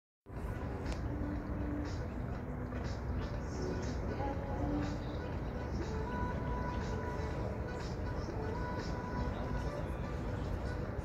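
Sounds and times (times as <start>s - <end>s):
faint voices: 0.3s - 11.0s.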